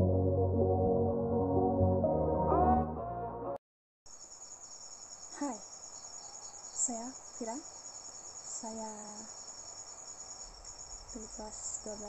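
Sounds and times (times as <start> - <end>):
intro music: 0.0 - 3.6
insects chirping: 4.1 - 12.0
woman speaking: 5.4 - 5.6, 6.8 - 7.6, 8.5 - 9.3, 11.2 - 12.0.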